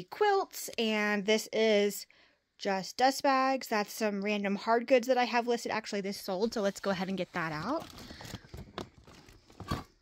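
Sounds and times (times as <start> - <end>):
plastic bin rustling and crinkling: 6.8 - 10.0.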